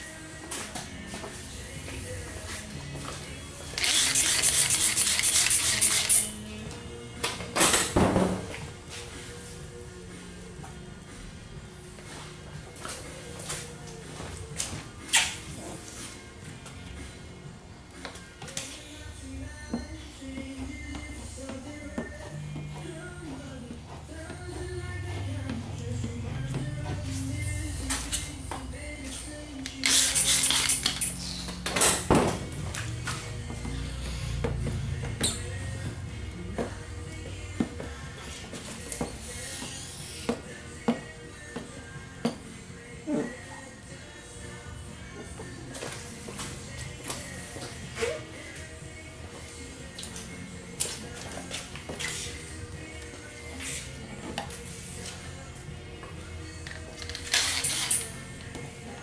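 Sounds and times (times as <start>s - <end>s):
spray bottle squirting: 3.8s - 6.3s.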